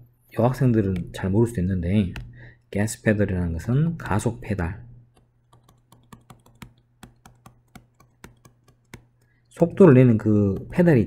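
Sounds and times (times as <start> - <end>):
stylus tapping on tablet: 2.1 - 2.4, 5.1 - 9.5, 10.4 - 11.0.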